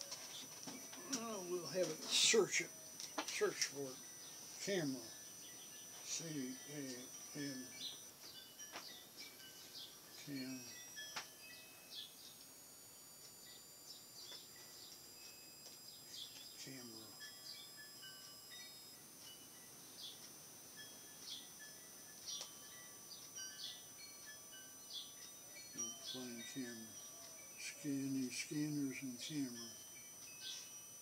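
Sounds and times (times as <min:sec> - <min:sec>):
faint high whine: 0:00.0 - 0:31.0.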